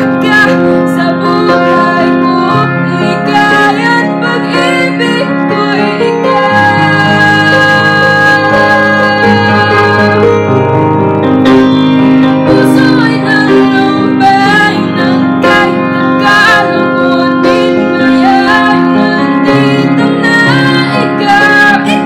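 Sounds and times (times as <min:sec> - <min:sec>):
woman singing: 0:00.0 - 0:10.6, 0:12.4 - 0:22.0
piano chords: 0:00.0 - 0:22.0.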